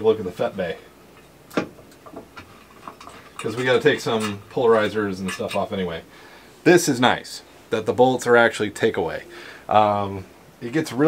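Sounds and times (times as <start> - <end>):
light clicks and knocks of handling: 1.1 - 5.8.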